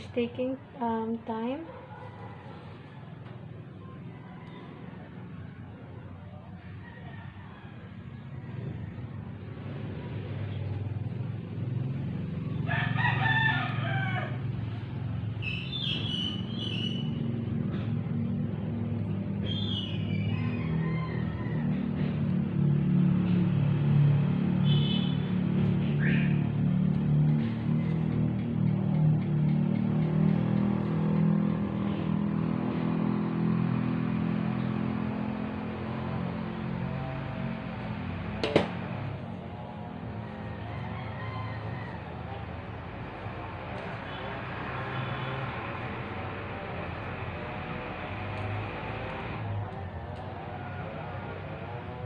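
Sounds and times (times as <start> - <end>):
roosters crowing: 1.9 - 10.2, 11.0 - 18.6, 19.2 - 25.2, 26.0 - 52.0.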